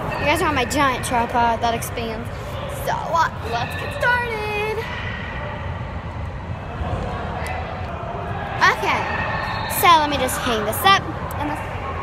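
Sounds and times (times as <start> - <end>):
sports hall background rumble: 0.0 - 12.0.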